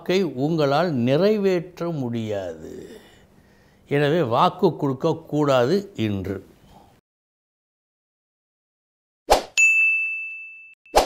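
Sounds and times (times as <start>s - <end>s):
bright bell-like ding: 9.6s - 10.8s.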